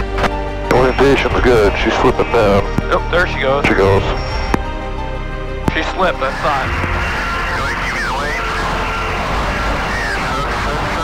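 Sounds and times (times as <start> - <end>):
helicopter engines and rotor: 5.7 - 11.0.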